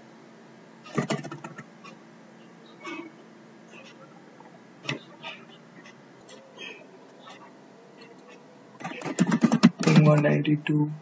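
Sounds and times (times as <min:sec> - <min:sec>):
keyboard keys typing: 0:00.9 - 0:01.7, 0:08.1 - 0:10.4
man talking: 0:09.8 - 0:11.0.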